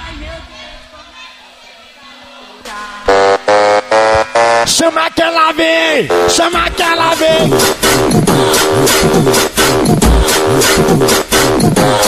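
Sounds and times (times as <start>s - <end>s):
dj mix music: 3.1s - 12.0s.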